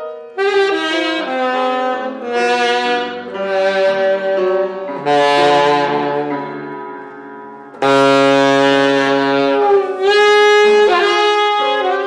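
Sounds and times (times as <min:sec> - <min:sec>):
alto saxophone notes: 0:00.0 - 0:07.2, 0:07.8 - 0:12.0.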